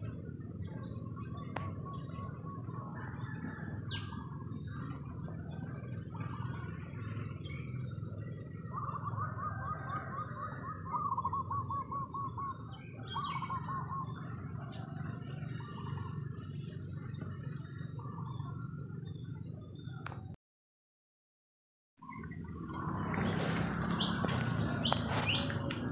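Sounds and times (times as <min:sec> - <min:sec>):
bird calling: 0:00.0 - 0:20.3, 0:22.0 - 0:25.9
steady low hum: 0:00.0 - 0:20.4.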